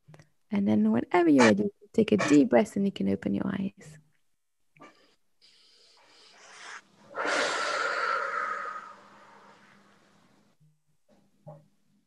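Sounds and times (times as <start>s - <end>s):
person breathing in deeply: 5.4s - 10.1s
person exhaling hard: 6.3s - 10.0s.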